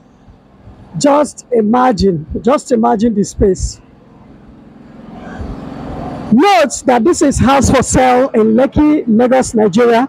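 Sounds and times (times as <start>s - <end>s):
engine humming: 0.0s - 9.0s.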